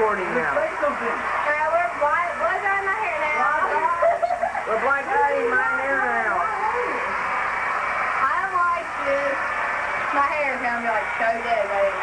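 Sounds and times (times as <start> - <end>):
people talking and laughing: 0.0 - 12.0.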